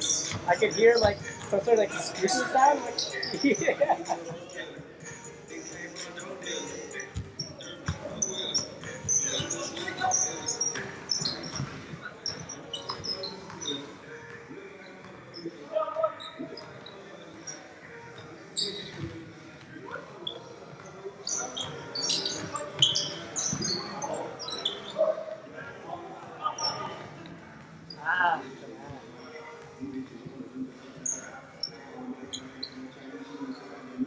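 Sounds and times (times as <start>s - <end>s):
sneaker squeaks: 0.0s - 3.8s, 5.0s - 25.4s, 26.4s - 27.2s.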